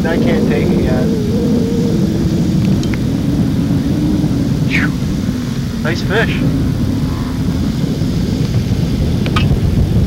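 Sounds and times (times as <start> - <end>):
boat motor droning: 0.0 - 10.0.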